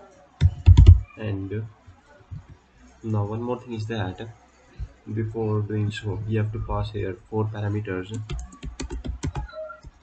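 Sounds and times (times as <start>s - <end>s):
computer keyboard typing: 0.4s - 1.0s, 8.1s - 10.0s.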